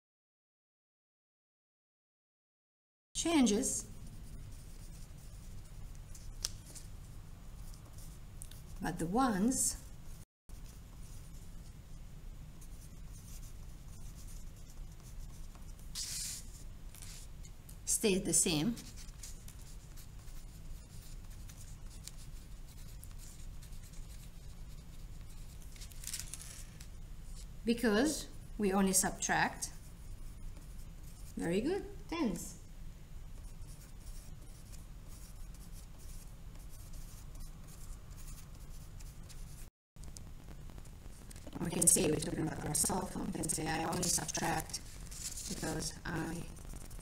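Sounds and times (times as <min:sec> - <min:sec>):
pencil scratching on paper: 0:03.8 - 0:06.9, 0:12.6 - 0:17.3, 0:18.5 - 0:25.6, 0:29.5 - 0:31.4, 0:33.4 - 0:39.7, 0:41.7 - 0:47.0.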